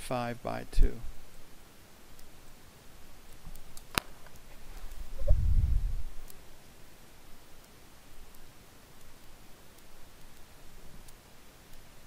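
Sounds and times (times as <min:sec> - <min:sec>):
low dull rumble: 0:05.1 - 0:06.2
faint ticks: 0:06.0 - 0:12.0.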